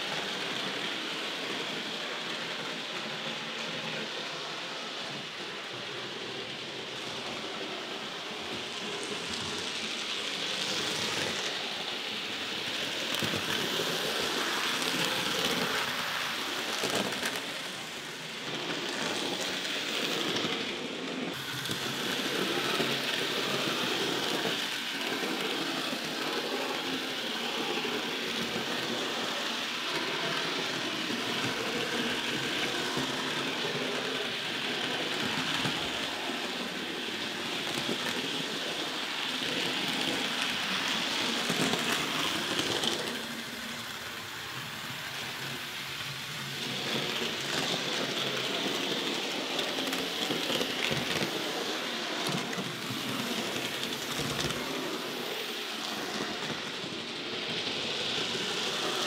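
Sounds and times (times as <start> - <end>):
model train motors and wheels hissing: 0.0 - 59.0.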